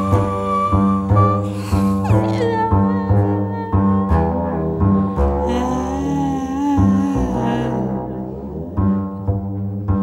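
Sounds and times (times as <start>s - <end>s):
double bass notes: 0.0s - 10.0s
person singing wavering notes: 2.0s - 8.8s.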